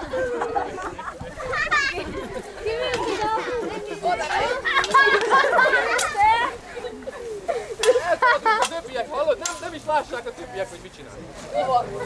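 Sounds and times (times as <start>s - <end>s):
people chattering: 0.0s - 12.0s.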